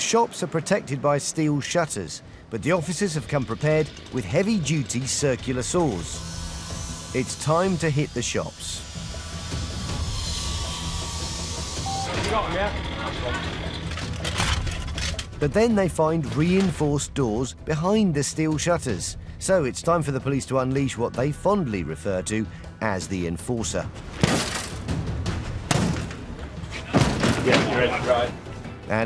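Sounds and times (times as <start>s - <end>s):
steel slats clanking and scraping: 12.2s - 15.4s, 24.2s - 28.4s.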